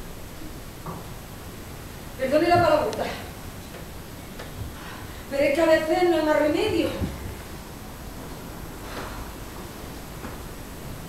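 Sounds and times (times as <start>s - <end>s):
woman speaking: 2.2s - 3.3s, 5.3s - 7.2s.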